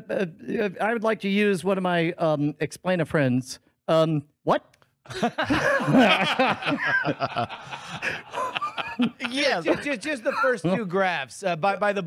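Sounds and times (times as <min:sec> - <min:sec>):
men laughing: 0:05.1 - 0:11.0.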